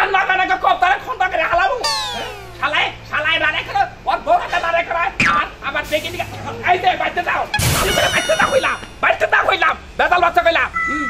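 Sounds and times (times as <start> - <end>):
loud human voice: 1.8 - 2.8
steady high tone: 1.8 - 2.8.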